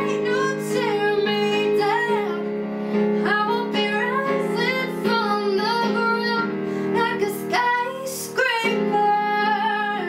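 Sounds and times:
sustained keyboard chords: 0.0 - 10.0
young woman singing pop melody: 0.0 - 10.0.

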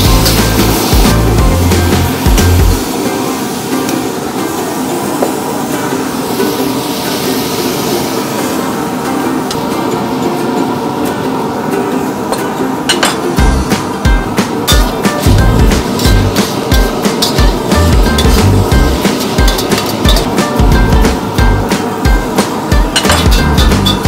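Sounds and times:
background music with heavy bass: 0.0 - 2.9, 13.4 - 24.0.

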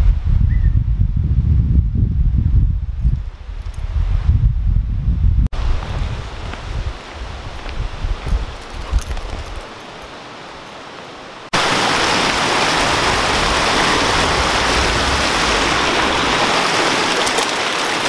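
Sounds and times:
stream rushing over rocks: 9.5 - 18.0.

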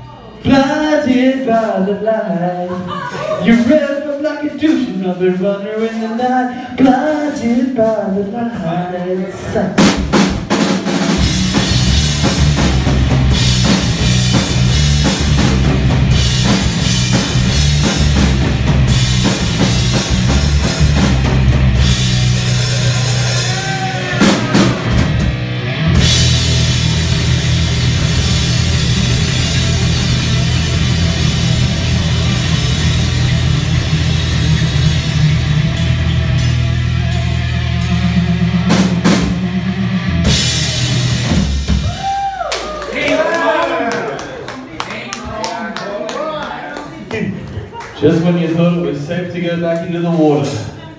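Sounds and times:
rock band playing: 9.4 - 44.6, 48.1 - 50.9.

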